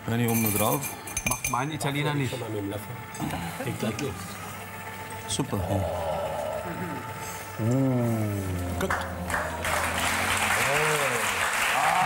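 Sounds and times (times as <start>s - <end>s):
studio background noise: 0.0s - 12.0s.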